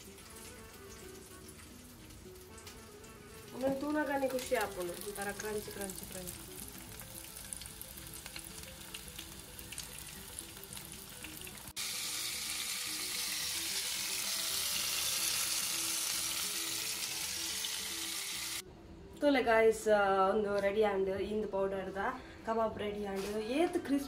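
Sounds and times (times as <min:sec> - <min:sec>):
chicken sizzling in oil: 0:00.0 - 0:18.6
soft background music: 0:00.0 - 0:24.0.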